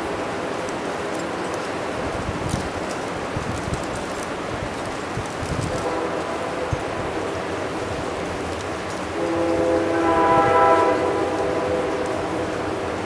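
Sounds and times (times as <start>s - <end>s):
distant train horn chord: 5.7s - 8.2s, 9.0s - 13.0s.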